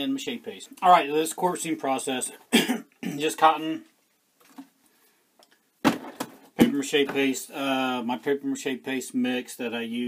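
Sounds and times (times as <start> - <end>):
faint handling sounds: 3.7 - 7.4
plastic tub thump on wood: 5.8 - 7.3.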